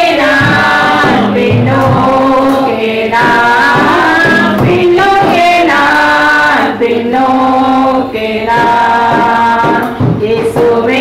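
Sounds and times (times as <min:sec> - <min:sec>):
women singing a hymn: 0:00.0 - 0:11.0.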